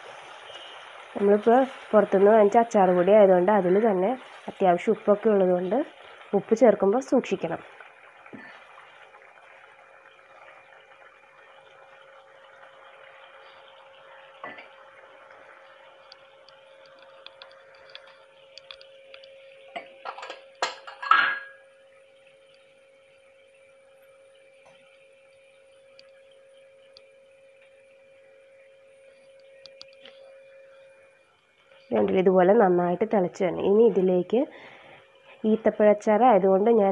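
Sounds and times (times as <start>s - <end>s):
liquid bubbling in a pan: 0.0s - 33.1s
steady hum: 0.0s - 36.9s.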